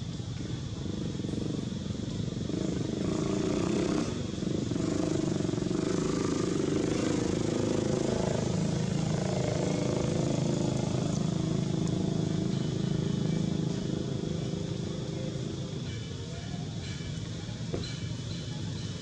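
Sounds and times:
motor engine humming: 0:04.2 - 0:17.9
people's voices: 0:05.9 - 0:19.0.

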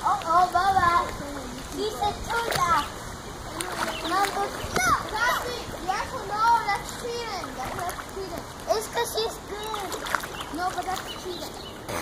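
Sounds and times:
children calling out and chattering: 0:00.0 - 0:11.9
water splashing in a pool: 0:00.0 - 0:12.0.

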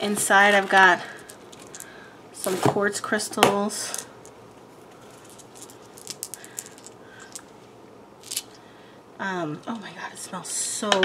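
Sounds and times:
packaging rustle: 0:04.9 - 0:07.5
packaging clicks and crinkles: 0:05.0 - 0:07.5.

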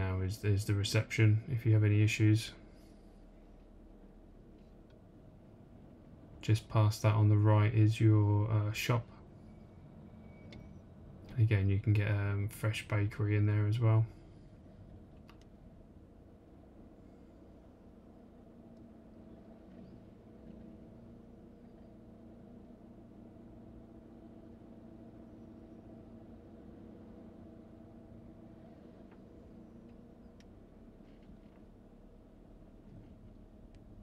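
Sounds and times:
car cabin drone: 0:00.0 - 0:34.0
light ticks: 0:15.2 - 0:15.5, 0:33.7 - 0:33.9.

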